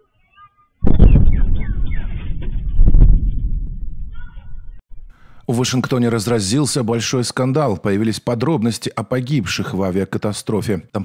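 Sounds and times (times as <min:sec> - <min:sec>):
short falling chirps: 0:00.8 - 0:03.2
sonic boom: 0:00.8 - 0:05.0.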